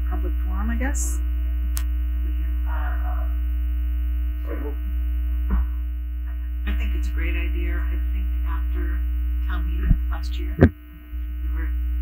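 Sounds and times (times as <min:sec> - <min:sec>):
low electrical hum: 0:00.0 - 0:12.0
steady buzzing tones: 0:08.2 - 0:12.0.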